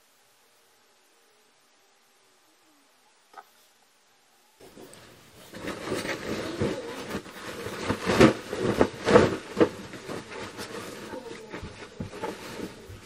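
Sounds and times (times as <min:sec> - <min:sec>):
bedding rustling and swishing: 0:04.6 - 0:13.0.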